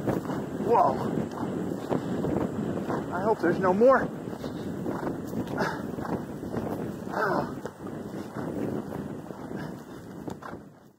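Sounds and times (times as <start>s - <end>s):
wind on microphone: 0.0s - 10.9s.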